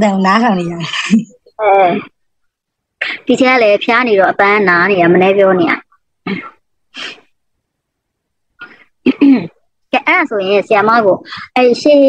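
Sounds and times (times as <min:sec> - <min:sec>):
person talking: 0:00.0 - 0:02.1, 0:03.0 - 0:05.9, 0:09.4 - 0:12.0
person coughing: 0:06.2 - 0:07.2, 0:08.6 - 0:09.6.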